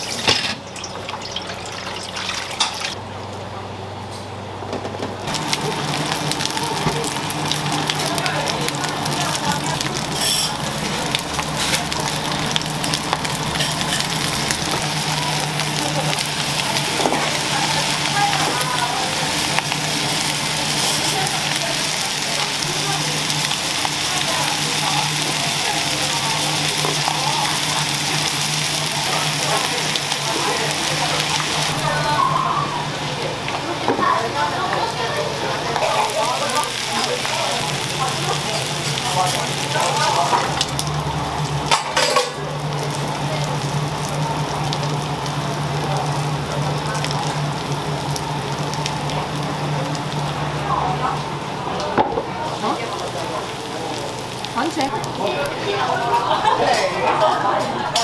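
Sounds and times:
food sizzling on hot stone plate: 0:05.3 - 0:51.5, 0:52.4 - 0:57.3.

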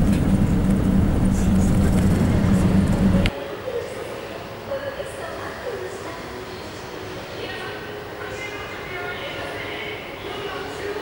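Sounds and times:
low even rumble: 0:00.0 - 0:03.3.

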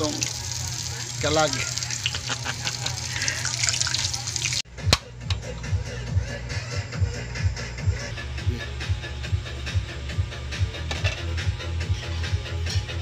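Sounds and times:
hot oil sizzling and crackling: 0:00.0 - 0:04.6
background music with steady beat: 0:04.7 - 0:13.0.

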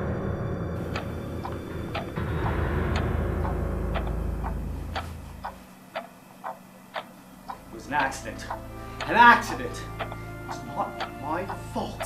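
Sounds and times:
deep low drone: 0:00.0 - 0:06.2
clock-like ticking: 0:00.8 - 0:12.0.

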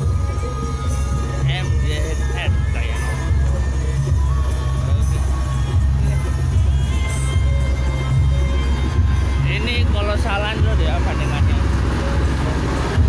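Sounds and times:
loud music with booming bass: 0:00.0 - 0:13.0.

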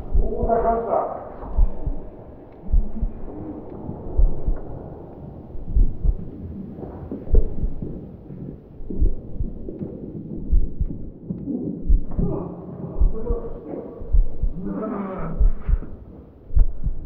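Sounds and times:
low heartbeat-like thumps: 0:00.0 - 0:17.0
murky low rumble: 0:00.0 - 0:17.0.

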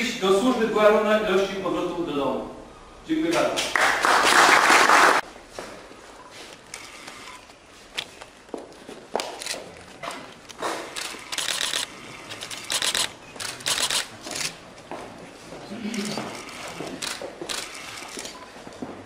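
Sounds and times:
applause: 0:03.6 - 0:05.2.

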